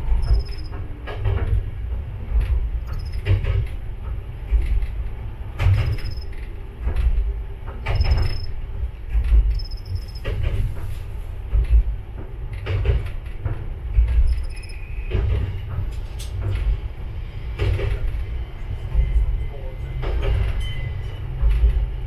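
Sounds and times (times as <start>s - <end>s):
railcar rumbling: 0.0s - 22.0s.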